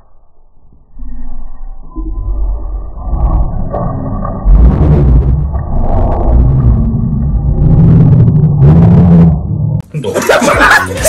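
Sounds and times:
microphone rumble: 1.9s - 9.9s.

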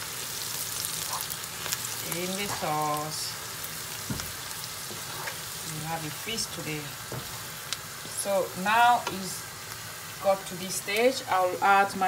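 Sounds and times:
vegetables sizzling in oil: 0.0s - 12.0s
wooden spoon scraping pan: 4.8s - 5.5s.

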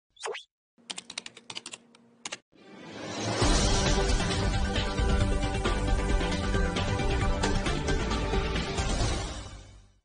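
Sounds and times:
keyboard typing: 0.8s - 2.4s.

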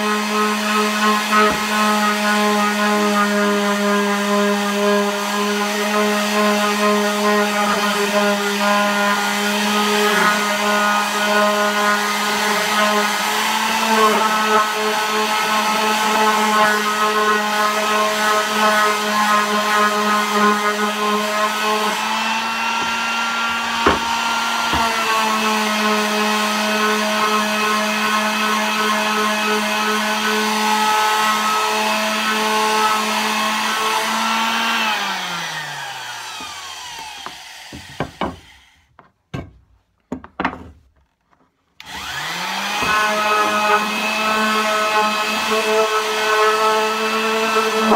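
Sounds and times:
sander motor winding down: 0.0s - 38.7s, 41.8s - 47.9s
electric palm sander running: 0.0s - 38.8s, 41.8s - 47.9s
sharp knocks: 23.8s - 24.9s.

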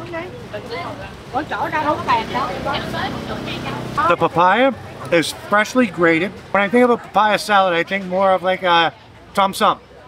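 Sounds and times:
people's voices: 0.0s - 10.0s
motorbike engine humming: 1.6s - 4.2s.

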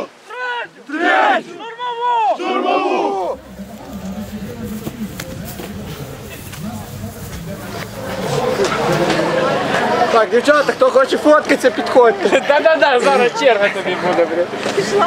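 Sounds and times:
crowd murmur with talk: 0.0s - 15.0s
men chanting in unison: 2.3s - 10.1s.

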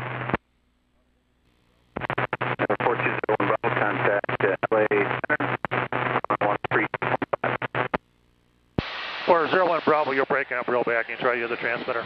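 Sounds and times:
radio hum: 0.0s - 12.0s
air traffic control radio speech: 2.0s - 7.6s, 9.3s - 12.0s.

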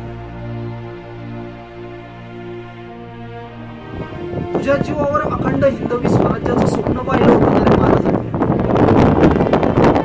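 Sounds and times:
loud gusty wind: 0.0s - 10.0s.

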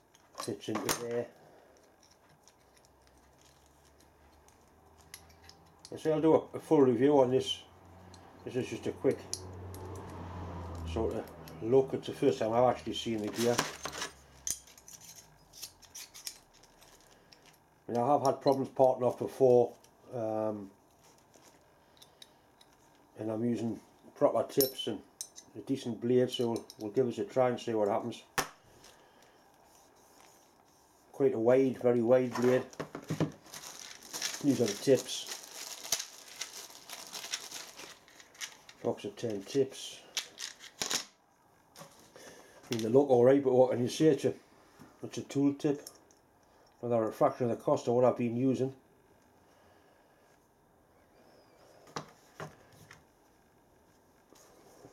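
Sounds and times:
light metallic clicks and scrapes: 0.0s - 6.1s, 13.1s - 17.6s, 26.3s - 27.2s.

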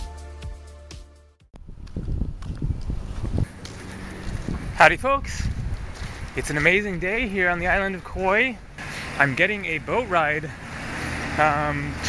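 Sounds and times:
music: 0.0s - 1.5s
footsteps on asphalt: 1.6s - 9.9s.

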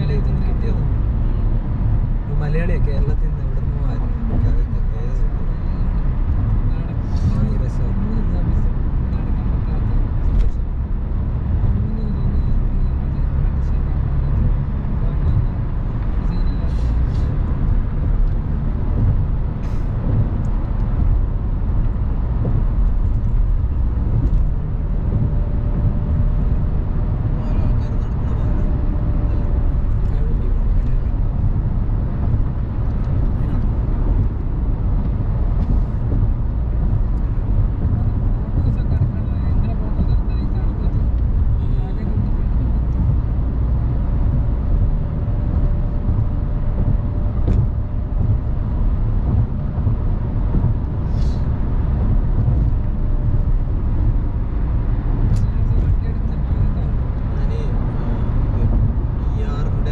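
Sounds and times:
car road noise rumble: 0.0s - 59.9s.

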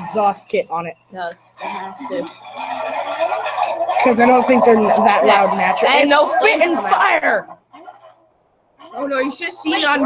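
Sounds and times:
voices talking: 0.0s - 7.5s, 8.9s - 10.0s.

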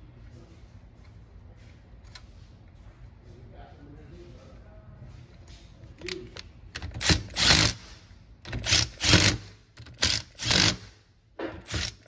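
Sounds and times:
impact driver bursts: 6.8s - 12.0s.

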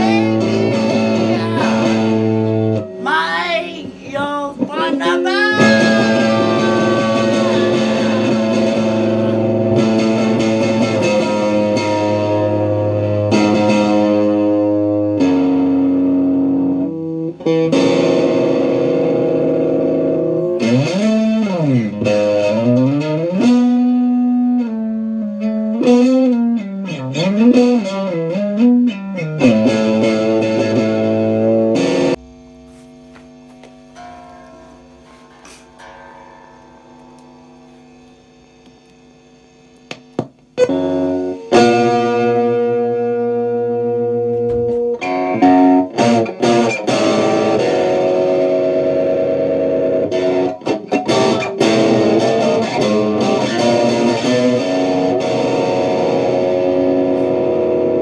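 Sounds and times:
electric guitar playing: 0.0s - 58.0s
clicks: 38.0s - 39.1s.

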